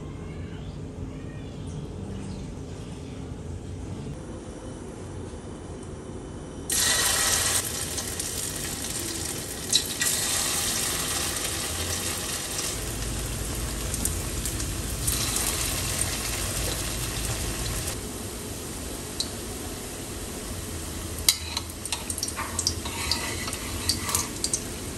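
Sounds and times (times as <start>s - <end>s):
hot oil sizzling in a pan: 6.7s - 24.9s.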